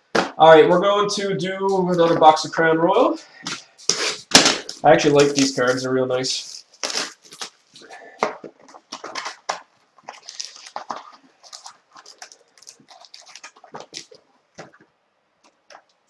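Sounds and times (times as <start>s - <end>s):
packaging crinkling and tearing: 6.4s - 14.8s.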